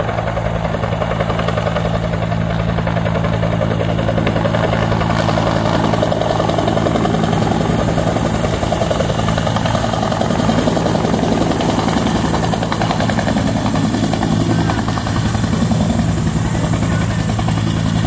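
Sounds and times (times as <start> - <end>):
helicopter high whine: 0.0 - 18.0
helicopter rotor beating: 0.0 - 18.0.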